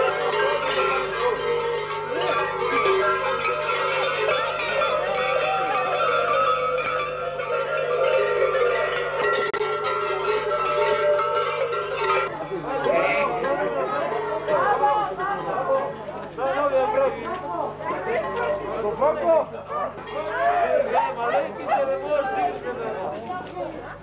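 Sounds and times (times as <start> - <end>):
large bells clanging: 0.0 - 22.7
voices: 0.0 - 24.0.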